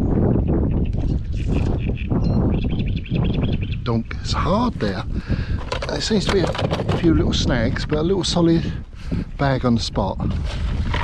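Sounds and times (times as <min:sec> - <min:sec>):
high bird chirps: 0:00.0 - 0:03.9
wind buffeting microphone: 0:00.0 - 0:11.0.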